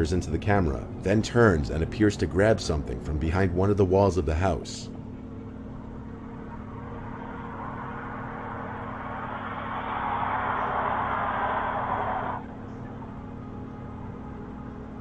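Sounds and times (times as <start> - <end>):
low droning background music: 0.0 - 15.0
rushing noise: 6.0 - 12.7.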